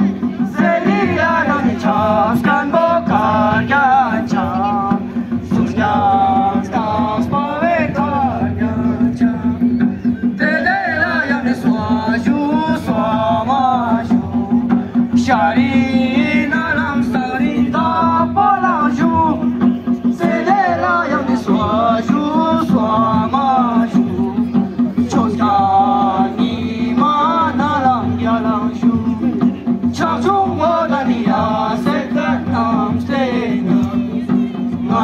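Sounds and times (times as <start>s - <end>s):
instrumental accompaniment: 0.0s - 35.0s
men singing folk song: 0.0s - 35.0s.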